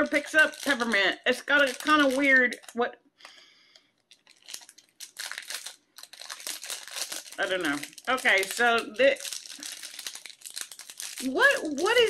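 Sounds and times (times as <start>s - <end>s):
plastic wrapper crinkling: 0.0s - 12.0s.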